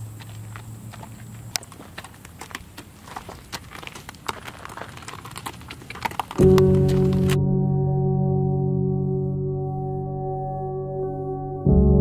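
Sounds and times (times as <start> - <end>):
footsteps on dirt: 0.0 - 7.4
hooves on dirt: 0.0 - 7.4.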